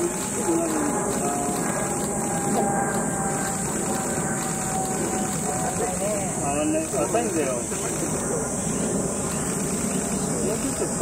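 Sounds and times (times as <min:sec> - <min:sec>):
faint voices: 0:00.0 - 0:11.0
low background rumble: 0:00.0 - 0:11.0.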